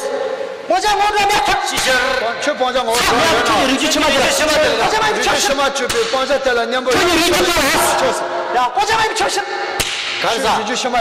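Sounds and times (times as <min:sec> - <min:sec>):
men speaking: 0:00.6 - 0:11.0
sharp hand clap: 0:05.8 - 0:06.4, 0:09.8 - 0:10.2.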